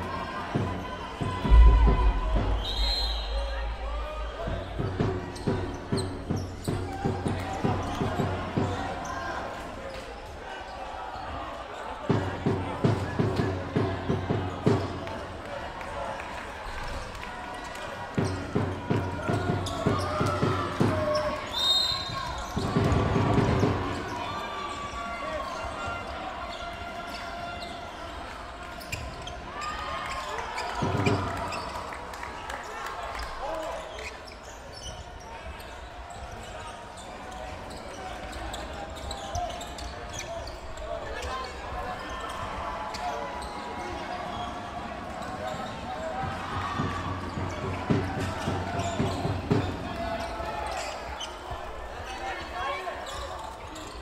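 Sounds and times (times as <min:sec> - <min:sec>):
players shouting: 0:00.0 - 0:16.5, 0:37.4 - 0:54.0.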